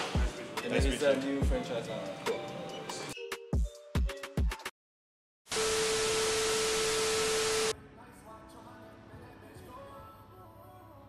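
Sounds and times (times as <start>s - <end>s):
television static hiss: 5.6s - 7.7s.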